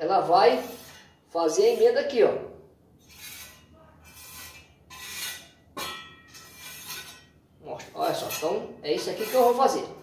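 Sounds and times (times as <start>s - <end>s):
trowel scraping cement: 0.5s - 2.2s, 3.0s - 5.6s, 6.3s - 9.9s.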